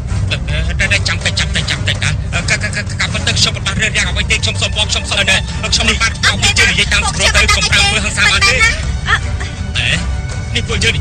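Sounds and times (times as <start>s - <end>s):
steady low rumble: 0.0s - 11.0s
people speaking: 0.3s - 10.0s, 10.6s - 11.0s.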